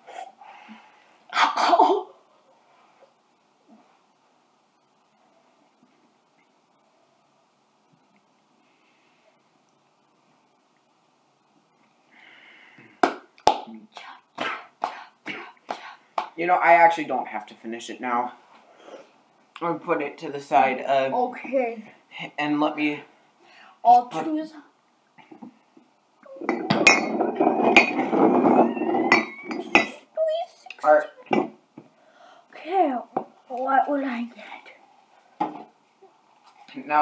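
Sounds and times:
mugs scraping on tabletop: 26.3s - 29.9s
mugs clinking together: 26.4s - 30.0s, 31.3s - 31.6s.

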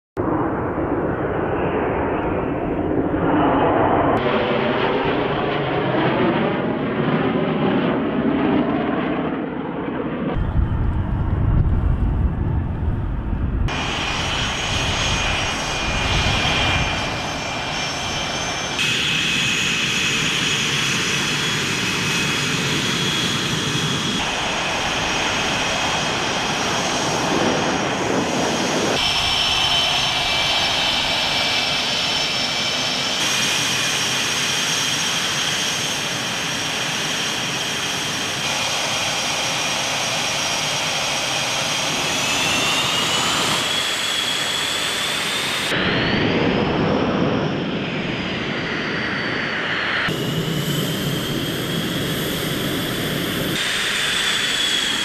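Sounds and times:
jet engines whining and roaring: 0.2s - 55.0s.

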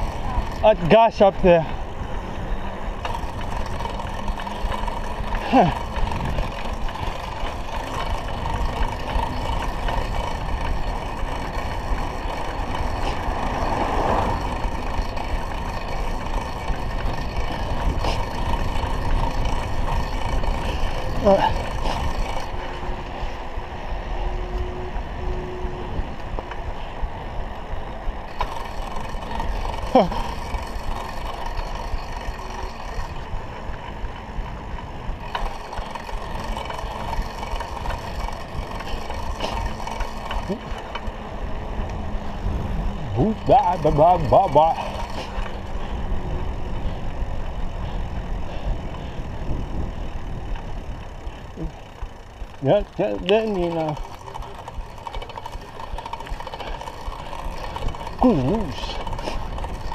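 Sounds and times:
wind and road noise: 0.0s - 59.9s.

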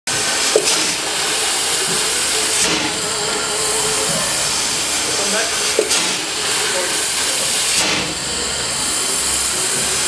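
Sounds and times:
steam hissing from locomotive: 0.1s - 10.0s.

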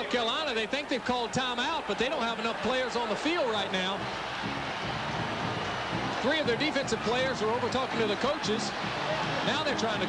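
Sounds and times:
stadium crowd noise: 0.0s - 10.0s.

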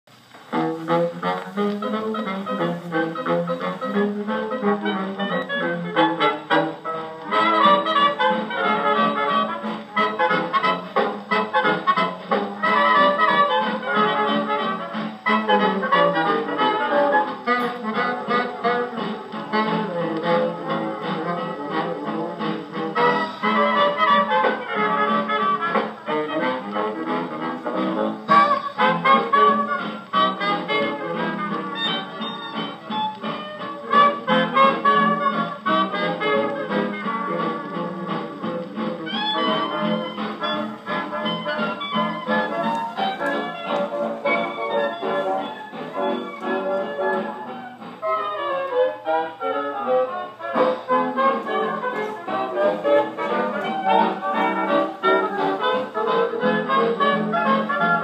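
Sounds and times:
swing jazz band on a phonograph: 0.1s - 58.0s.

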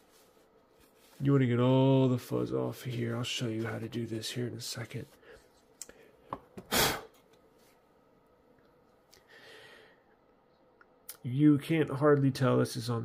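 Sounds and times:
cloth wiping phone screen: 0.0s - 1.5s
soft hiss of rubbing: 0.0s - 1.6s
puff of air: 6.6s - 7.2s.

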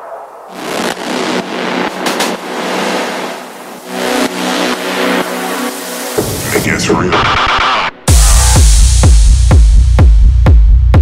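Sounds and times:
held synth chord: 0.0s - 6.4s
rushing noise sweep: 0.0s - 8.7s.

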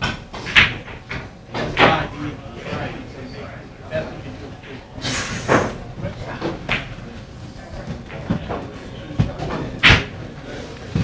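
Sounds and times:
low voices: 1.4s - 11.0s.

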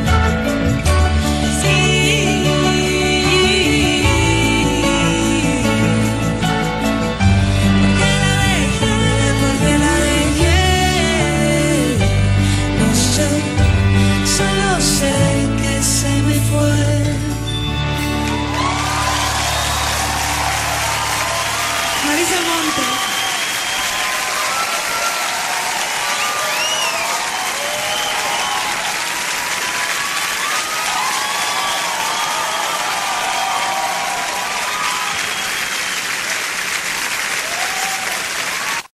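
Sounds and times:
audience clapping and cheering: 18.0s - 38.9s.

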